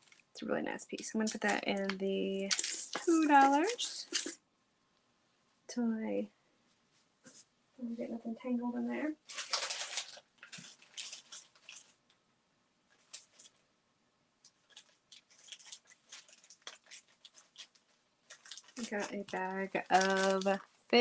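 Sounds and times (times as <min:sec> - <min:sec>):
jewelry and plastic bags rustling: 0:00.0 - 0:04.4, 0:08.9 - 0:12.0, 0:14.5 - 0:21.0.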